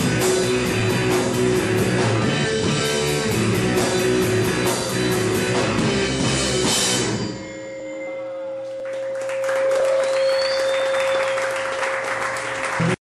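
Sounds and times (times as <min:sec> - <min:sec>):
rock band final chord: 0:00.0 - 0:07.4
audience applauding: 0:08.6 - 0:13.0
person whistling: 0:09.9 - 0:11.5.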